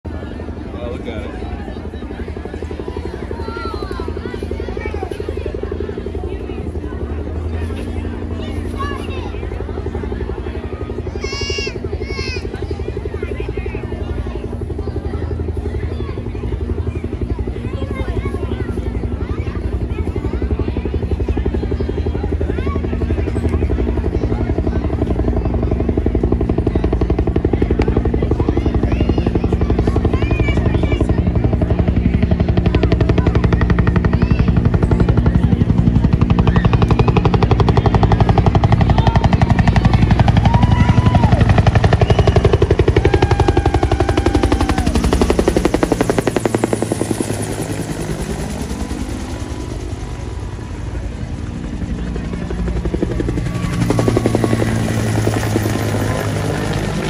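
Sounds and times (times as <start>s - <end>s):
helicopter rotor beating: 0.0s - 57.0s.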